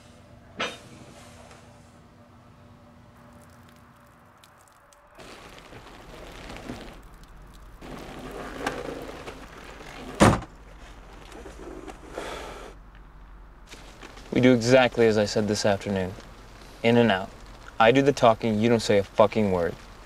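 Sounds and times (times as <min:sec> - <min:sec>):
rustling movement: 0:05.2 - 0:12.6, 0:13.6 - 0:17.8
car door shutting: 0:10.0 - 0:10.5.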